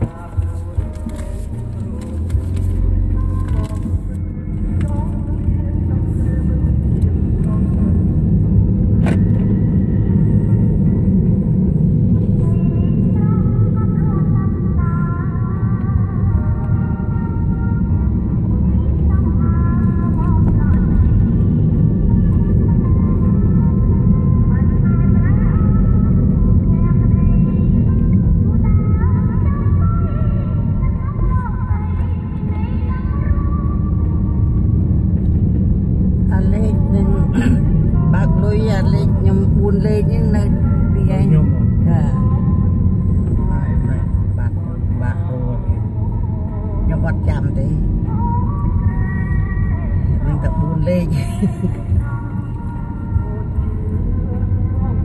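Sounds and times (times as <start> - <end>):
car road and engine rumble: 0.0 - 55.0
music: 0.0 - 55.0.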